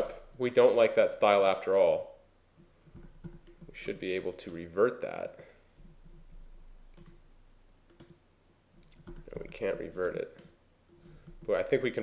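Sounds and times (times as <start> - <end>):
computer mouse clicks: 2.9 - 7.3, 7.9 - 8.2, 8.8 - 11.5.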